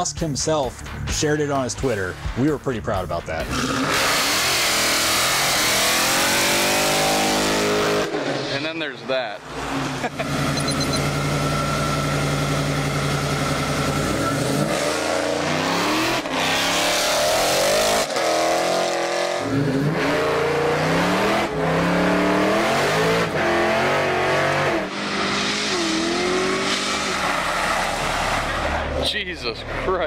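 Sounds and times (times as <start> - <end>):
car engine revving: 3.4 - 30.0.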